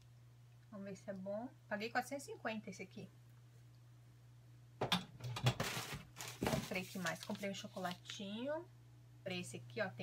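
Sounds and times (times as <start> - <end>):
faint low hum: 0.0 - 10.0
groceries knocking on counter: 4.8 - 7.0
packaging rustling: 5.5 - 8.2.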